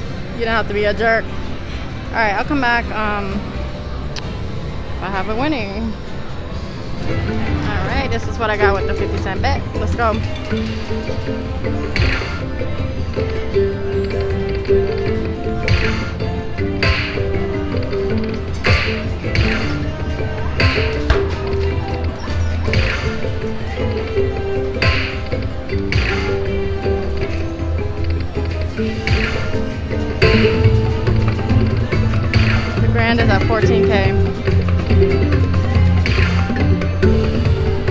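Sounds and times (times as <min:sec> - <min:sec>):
slot machine bonus music: 0:07.1 - 0:37.9.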